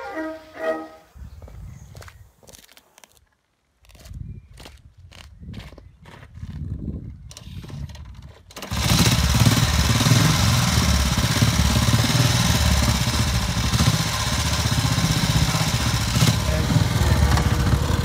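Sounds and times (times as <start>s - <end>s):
motorcycle engine kick-started: 7.3s - 18.0s.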